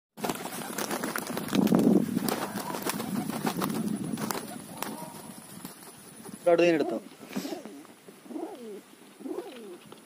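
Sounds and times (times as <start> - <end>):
pigeon cooing: 2.3 - 5.5, 6.6 - 9.9.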